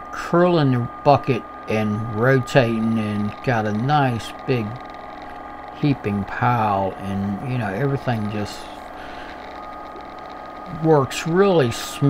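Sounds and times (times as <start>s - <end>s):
mechanical hum: 0.0s - 12.0s
person speaking: 0.2s - 4.8s, 5.8s - 9.4s, 10.7s - 12.0s.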